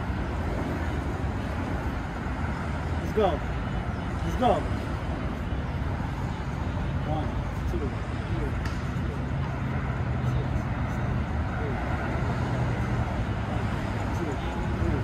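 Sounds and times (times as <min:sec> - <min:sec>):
faint voices: 0:00.0 - 0:15.0
road traffic drone: 0:00.0 - 0:15.0.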